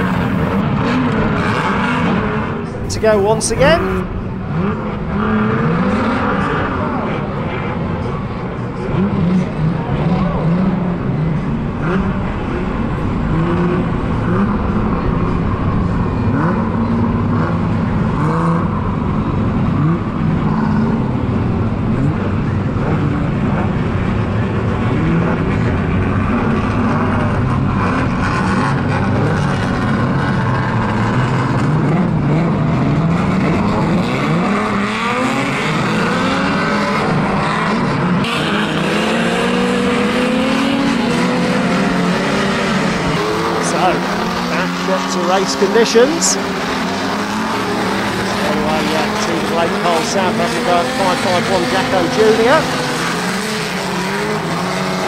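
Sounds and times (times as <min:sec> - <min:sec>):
car engines revving: 0:00.0 - 0:55.0
racing car engines droning: 0:00.0 - 0:55.0.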